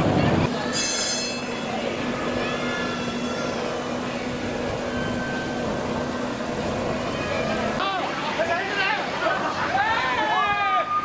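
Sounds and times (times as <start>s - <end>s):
distant voices: 0.0s - 11.0s
low mechanical hum: 0.0s - 11.0s.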